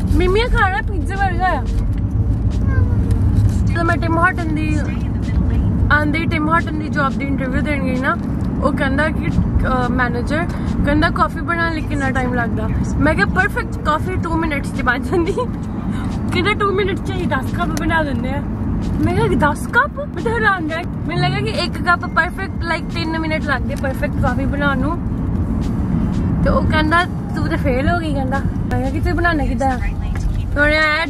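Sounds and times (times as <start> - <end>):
people conversing in a car: 0.0 - 31.0
road and engine rumble: 0.0 - 31.0.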